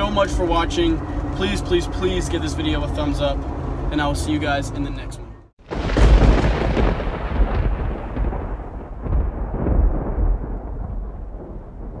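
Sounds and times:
deep boom: 0:05.6 - 0:12.0
thunder-like rumble: 0:05.6 - 0:12.0.

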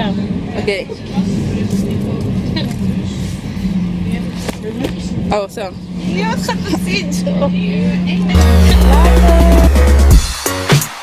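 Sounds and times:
train carriage hum and rumble: 0:00.0 - 0:10.1.

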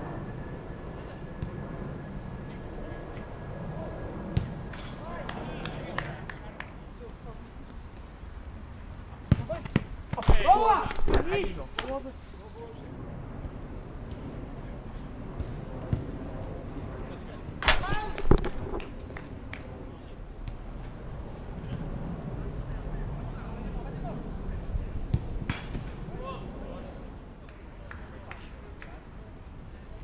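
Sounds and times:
steady background noise: 0:00.0 - 0:30.0
ball kick thuds: 0:09.2 - 0:11.3
player shouting: 0:10.4 - 0:11.0.

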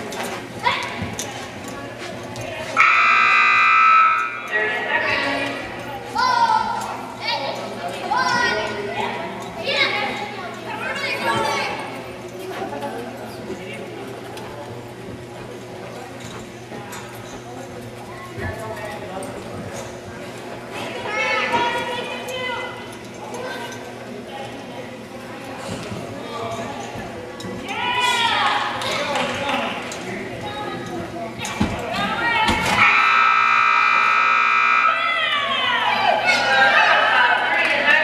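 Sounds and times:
arena horn long tone: 0:32.8 - 0:35.1.

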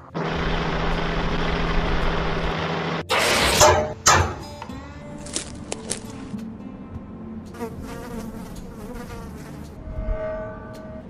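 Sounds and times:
cartoon fly buzzing: 0:07.6 - 0:11.0.

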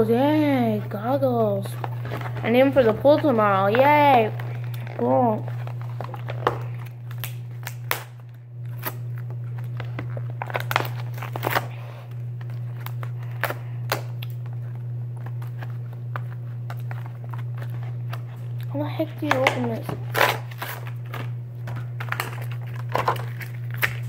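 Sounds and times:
steady low hum: 0:00.0 - 0:24.0
blister packaging crinkling and snapping: 0:01.4 - 0:24.0.

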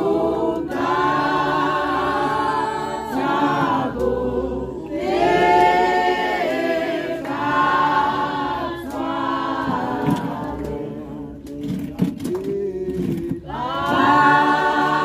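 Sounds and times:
congregation singing unaccompanied: 0:00.0 - 0:15.0.

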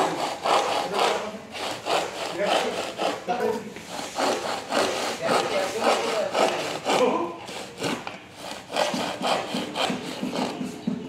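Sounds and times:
hand saw cutting wood: 0:00.0 - 0:11.0.

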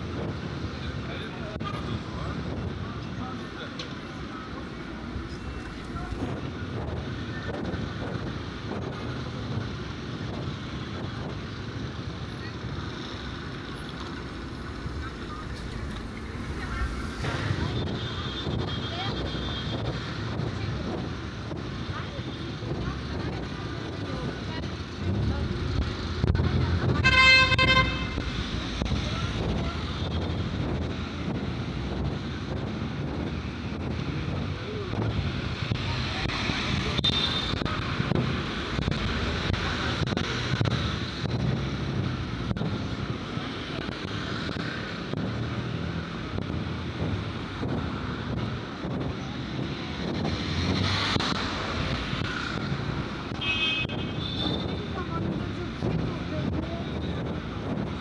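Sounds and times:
street traffic: 0:00.0 - 0:58.0
people talking: 0:00.7 - 0:08.2, 0:12.0 - 0:32.5, 0:34.1 - 0:40.6, 0:54.4 - 0:57.9
car horn: 0:27.0 - 0:28.3, 0:37.0 - 0:37.6, 0:53.4 - 0:54.8.

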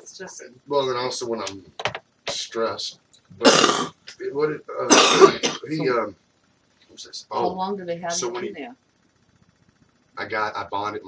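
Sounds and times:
person clearing throat: 0:03.4 - 0:04.0, 0:04.9 - 0:05.9.

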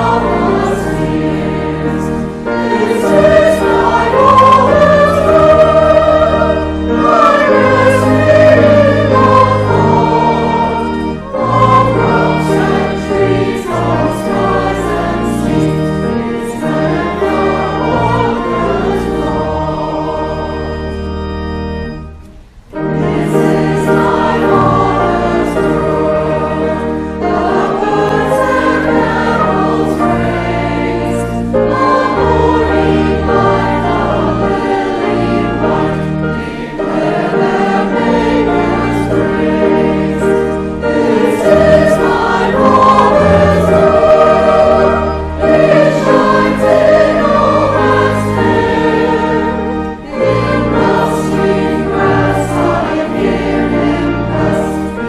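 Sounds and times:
choir singing: 0:00.0 - 0:55.0
pipe organ: 0:00.0 - 0:55.0.

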